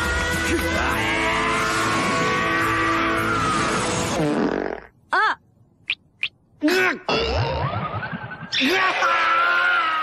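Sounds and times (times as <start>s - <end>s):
cartoon fart sound effect: 4.1s - 4.9s, 7.1s - 7.9s.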